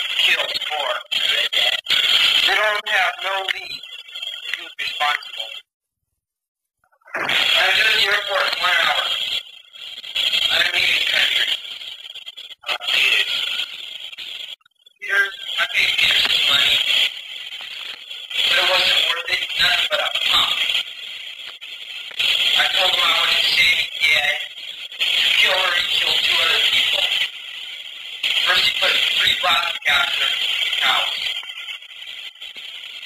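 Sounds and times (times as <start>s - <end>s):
voices speaking on film soundtrack: 0.0s - 3.8s, 4.4s - 5.6s, 7.1s - 9.3s, 10.4s - 11.6s, 12.6s - 13.7s, 15.0s - 17.1s, 17.8s - 20.8s, 22.2s - 27.3s, 28.2s - 31.4s.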